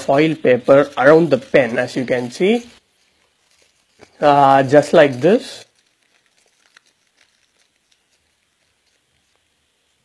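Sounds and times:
aluminium foil crinkling: 0.0s - 10.0s.

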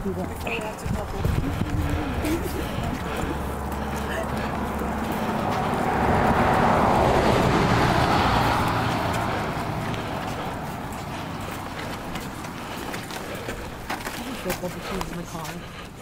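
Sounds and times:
car passing: 0.0s - 16.0s.

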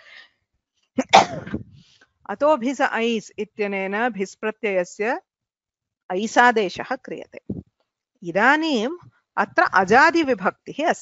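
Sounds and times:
woman sneezing: 1.0s - 1.8s.

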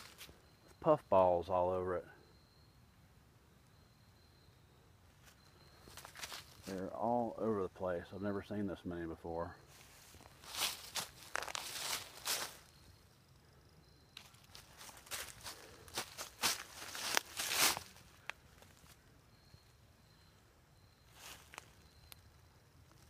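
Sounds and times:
footsteps in dry leaves: 5.8s - 6.8s, 9.7s - 12.8s, 14.2s - 19.0s.

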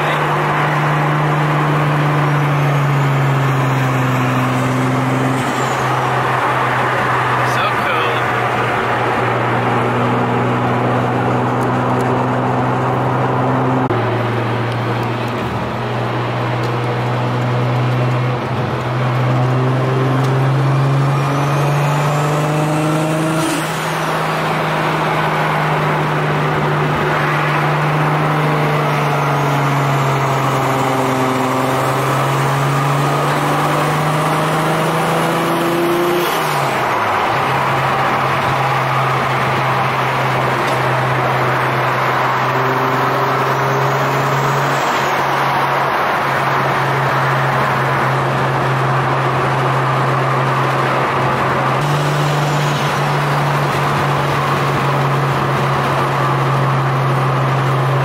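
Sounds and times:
car engine droning in cabin: 0.0s - 58.0s
road noise: 0.0s - 58.0s.

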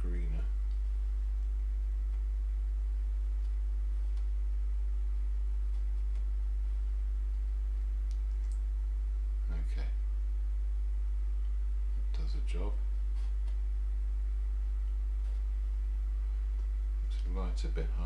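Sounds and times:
steady low hum: 0.0s - 18.0s
faint clicks: 7.3s - 8.7s.

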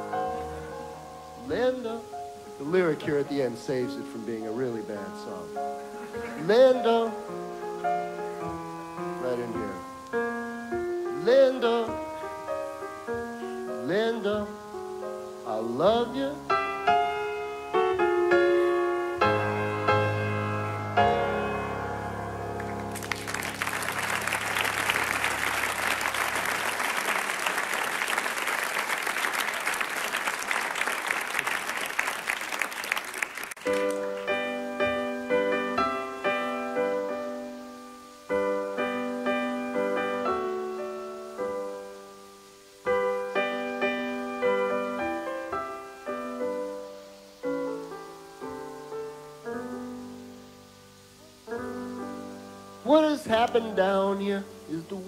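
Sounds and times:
solo piano chords: 0.0s - 26.9s, 33.6s - 55.0s
audience applauding: 22.5s - 34.5s.

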